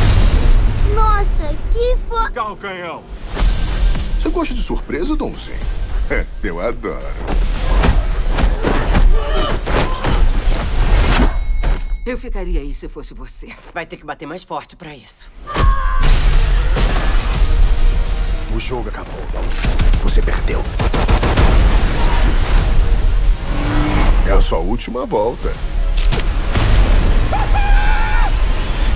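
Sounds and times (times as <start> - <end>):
film music: 0.0 - 11.4, 15.3 - 28.9
car engines revving: 22.7 - 24.6.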